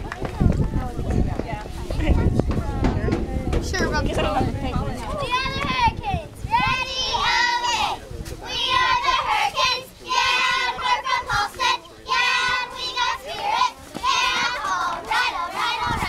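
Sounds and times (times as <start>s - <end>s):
girls chanting a cheer: 5.2s - 16.0s.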